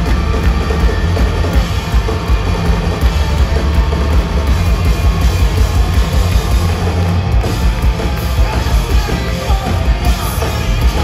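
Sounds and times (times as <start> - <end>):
drum kit: 0.0 - 11.0
electric guitars: 0.0 - 11.0
live rock band playing: 0.0 - 11.0.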